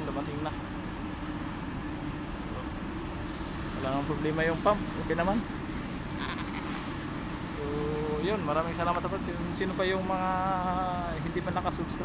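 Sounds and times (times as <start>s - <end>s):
person humming: 7.6s - 8.2s.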